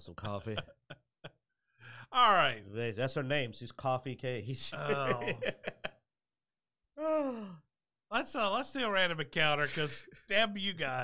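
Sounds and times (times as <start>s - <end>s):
man sighing: 7.0s - 7.7s.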